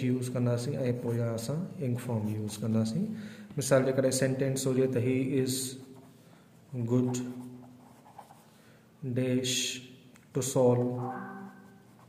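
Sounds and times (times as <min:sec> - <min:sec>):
pen scratching on paper: 0:07.8 - 0:08.4
man speaking: 0:10.4 - 0:11.6.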